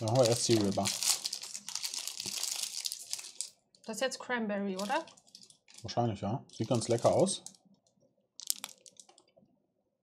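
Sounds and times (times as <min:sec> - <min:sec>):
wrapper crinkling: 0:00.0 - 0:03.6, 0:04.8 - 0:07.6, 0:08.4 - 0:09.2.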